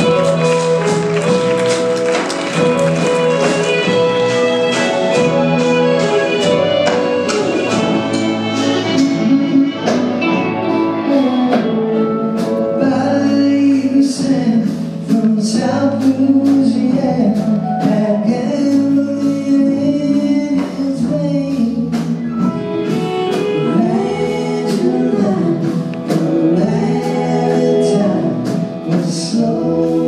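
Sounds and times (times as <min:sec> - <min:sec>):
accordion: 0:00.0 - 0:12.8, 0:22.2 - 0:30.0
electric guitar: 0:00.0 - 0:13.7, 0:20.2 - 0:30.0
bass guitar: 0:00.0 - 0:30.0
live band playing: 0:00.0 - 0:30.0
person singing: 0:00.0 - 0:30.0.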